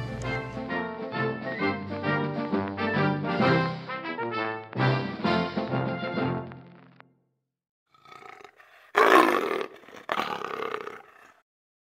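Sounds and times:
roaring animal calls: 8.0 - 11.4.

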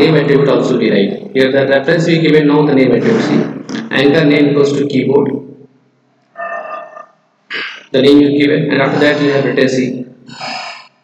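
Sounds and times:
man speaking: 0.0 - 5.4, 7.5 - 10.2
man's wordless vocal sound: 8.7 - 10.6.

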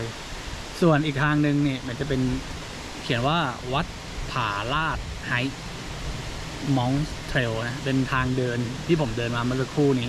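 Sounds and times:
man speaking: 0.0 - 2.4, 3.0 - 5.6, 6.6 - 10.0
background hiss: 0.0 - 10.0.

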